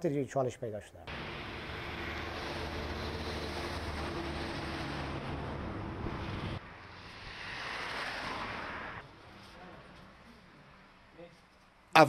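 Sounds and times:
street noise: 0.0 - 12.0
heavy truck engine: 1.1 - 6.6
cars passing with tyre rush: 1.1 - 11.9.

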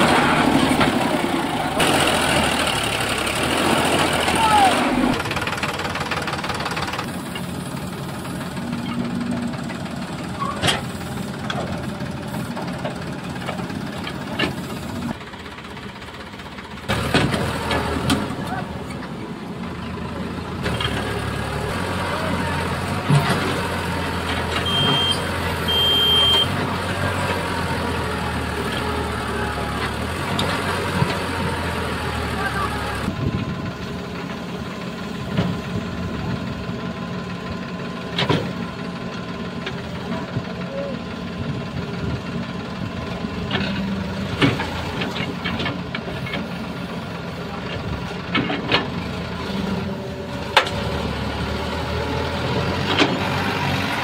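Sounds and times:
diesel engines running: 0.0 - 54.0
voices of onlookers: 4.2 - 5.2, 32.2 - 33.2.

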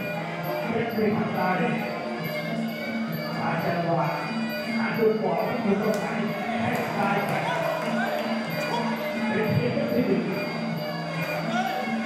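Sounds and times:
boxing ring music: 0.1 - 12.0
crowd shouting: 5.5 - 12.0.

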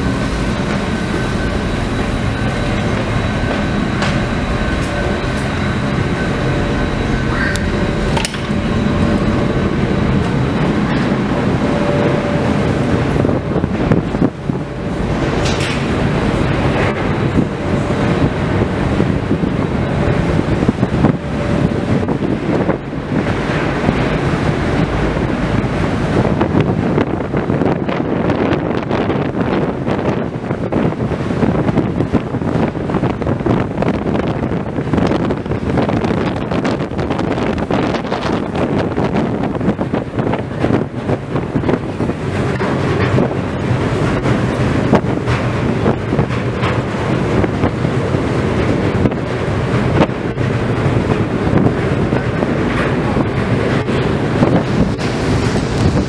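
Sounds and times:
ferry engine rumble: 0.0 - 56.0
wind buffeting microphone: 0.0 - 56.0.

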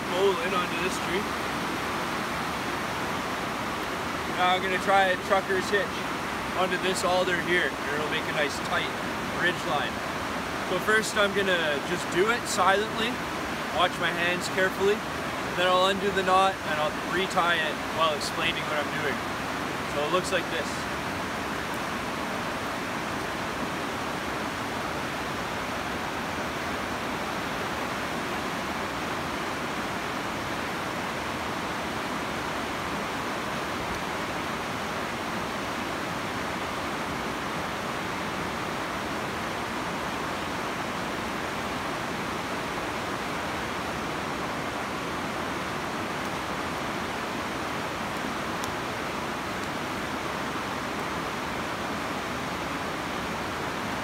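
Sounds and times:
whitewater river rushing: 0.0 - 54.0.

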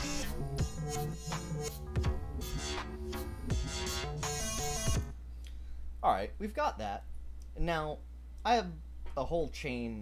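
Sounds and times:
electronic bass line: 0.0 - 5.2.

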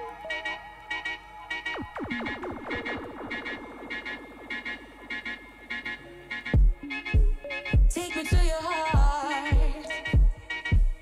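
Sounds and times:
sweeping synth tones: 0.0 - 7.9
high synth notes: 0.0 - 11.0
heavy kick drum: 6.6 - 11.0.

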